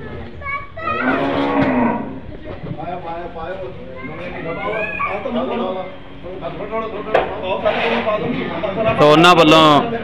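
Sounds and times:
cow mooing: 0:01.0 - 0:02.2.

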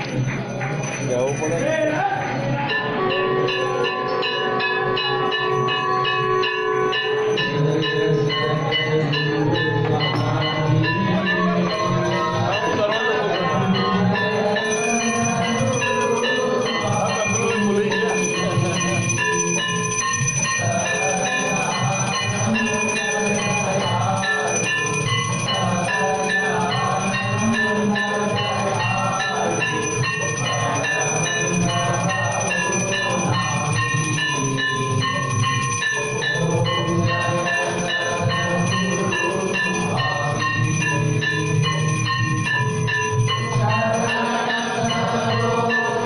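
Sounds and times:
temple bells ringing rapidly: 0:00.0 - 0:46.0
music: 0:02.7 - 0:46.0.

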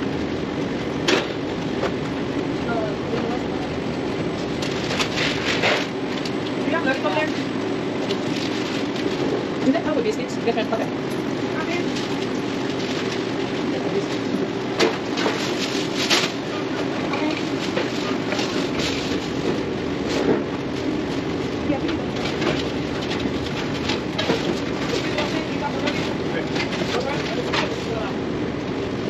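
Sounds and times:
clatter and knocks: 0:21.8 - 0:27.8.

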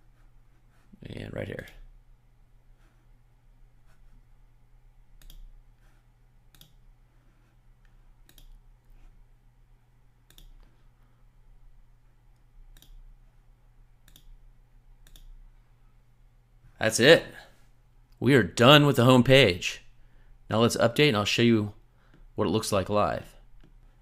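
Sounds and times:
faint low hum: 0:00.0 - 0:24.0
computer mouse clicking: 0:05.2 - 0:05.5, 0:06.5 - 0:06.8, 0:07.8 - 0:08.6, 0:10.3 - 0:10.7, 0:12.4 - 0:13.0, 0:14.0 - 0:14.4, 0:15.0 - 0:15.4.

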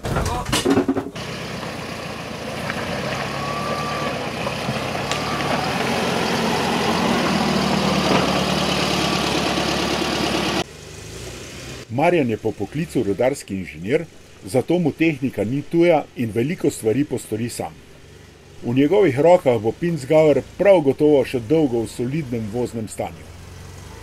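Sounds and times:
vehicle engine on dirt track: 0:00.7 - 0:24.0.

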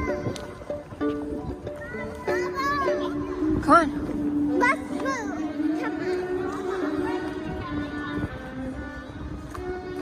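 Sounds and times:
street musician instrumental melody: 0:00.0 - 0:10.0.

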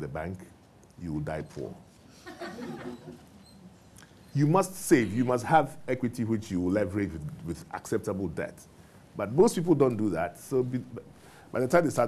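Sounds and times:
soft laughter: 0:02.1 - 0:03.4.

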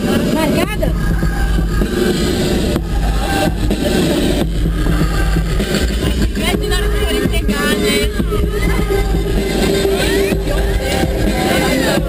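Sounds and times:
low vehicle rumble: 0:00.0 - 0:12.0
people chattering and calling out: 0:00.0 - 0:12.0.

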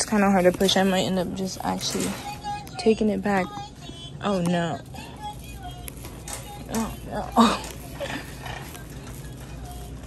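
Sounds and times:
shopping cart wheels rattling: 0:00.0 - 0:03.5, 0:04.5 - 0:10.0.

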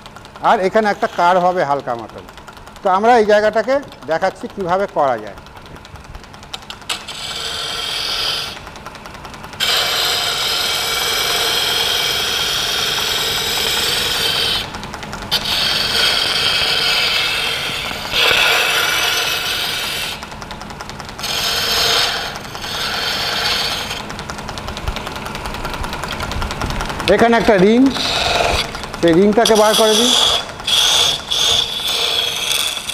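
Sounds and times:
turning tool scraping wood: 0:00.0 - 0:08.8, 0:09.5 - 0:32.9
lathe humming: 0:00.0 - 0:32.9.

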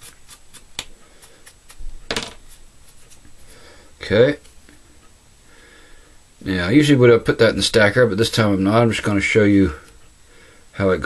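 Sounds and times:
comb scratching through hair: 0:00.0 - 0:03.6.

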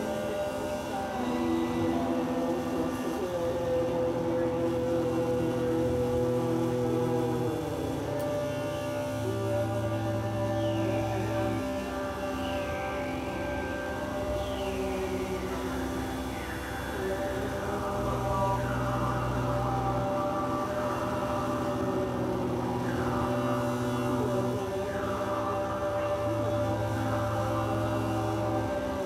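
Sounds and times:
layered sustained drone tones: 0:00.0 - 0:29.0
low bass drone: 0:00.0 - 0:29.0.

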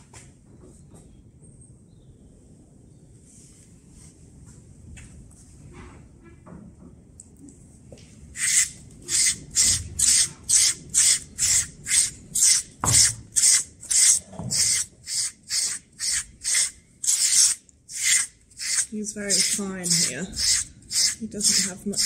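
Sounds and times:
blade rasping on horse coat: 0:08.4 - 0:22.0.

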